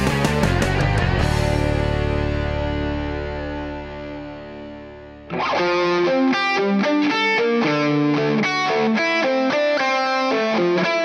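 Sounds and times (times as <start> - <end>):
overdriven electric guitar chord: 0.0 - 11.0.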